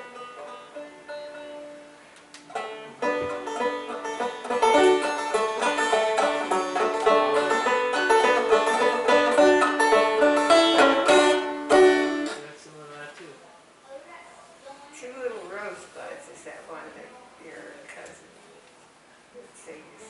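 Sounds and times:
banjo: 0:00.0 - 0:12.6
string band playing: 0:00.0 - 0:12.6.

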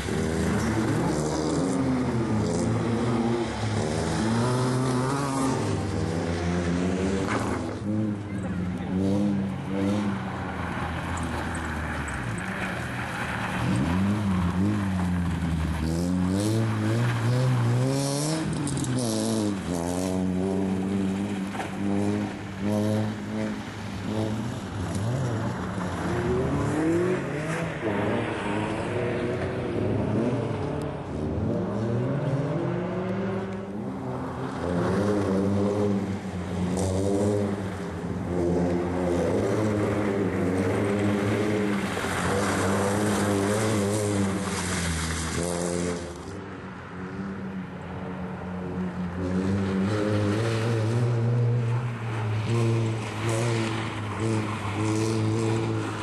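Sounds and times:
rally car engine revving: 0:00.0 - 0:46.4, 0:48.6 - 0:56.0
tyres on muddy ground: 0:00.0 - 0:56.0.

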